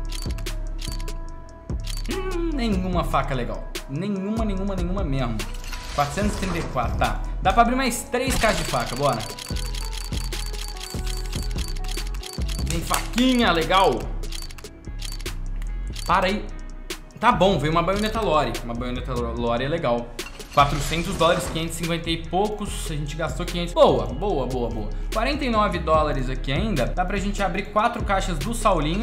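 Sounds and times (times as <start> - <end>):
rapid sharp ticks: 0.0 - 1.2, 1.8 - 2.2, 8.4 - 16.2
background music: 0.0 - 29.0.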